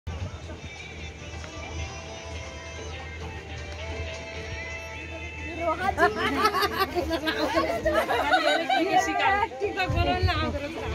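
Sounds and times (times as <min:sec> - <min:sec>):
overlapping voices chattering: 0:00.1 - 0:10.9.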